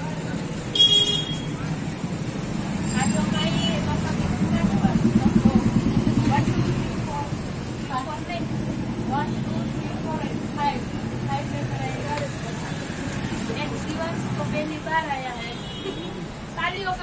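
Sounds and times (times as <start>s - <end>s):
vehicle engine rumble: 0.0s - 15.1s
people talking quietly: 0.0s - 17.0s.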